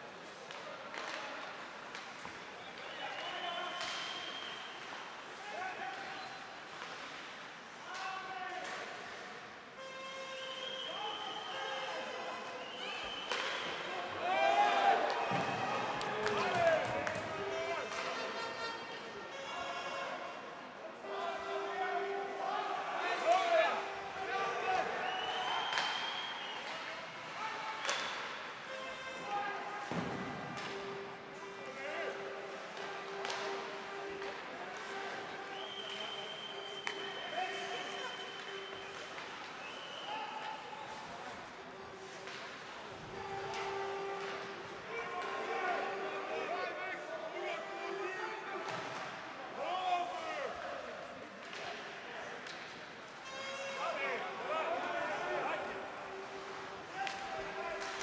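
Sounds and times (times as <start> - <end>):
players shouting: 12.9 - 18.2
hockey sticks and puck knocking: 32.6 - 35.2, 56.9 - 58.0.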